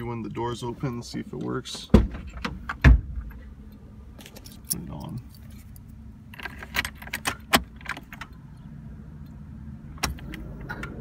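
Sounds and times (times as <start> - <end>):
car keys jangling in ignition: 3.2 - 8.7.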